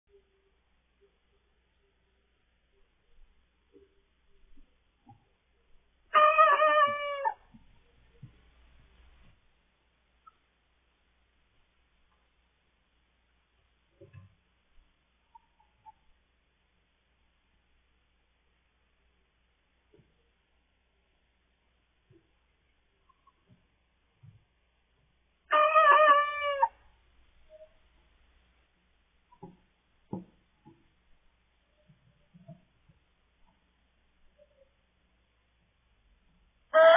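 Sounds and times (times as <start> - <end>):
young cockerel crowing: 6.1 - 7.5, 25.5 - 26.8.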